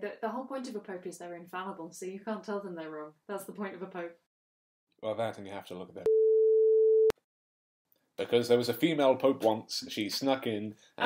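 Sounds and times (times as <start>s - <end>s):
electronic censor bleep: 6.1s - 7.2s.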